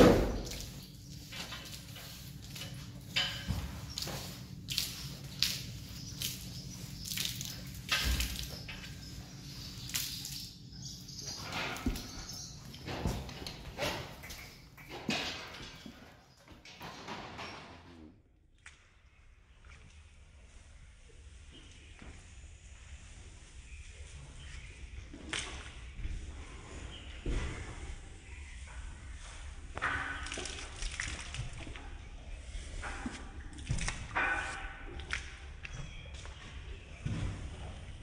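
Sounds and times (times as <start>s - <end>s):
water dripping and splashing: 0.0s - 16.4s, 24.4s - 26.1s, 29.6s - 37.9s.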